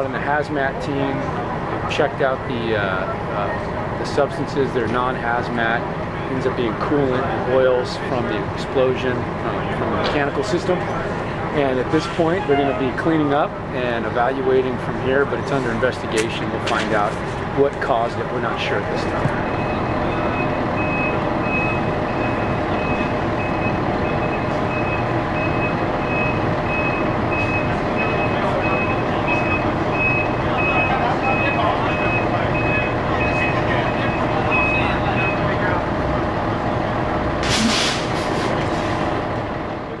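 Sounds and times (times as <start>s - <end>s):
truck engine running: 0.0s - 40.0s
truck backup alarm beeping: 11.3s - 13.7s, 18.2s - 39.4s
air brake hiss: 37.4s - 39.0s.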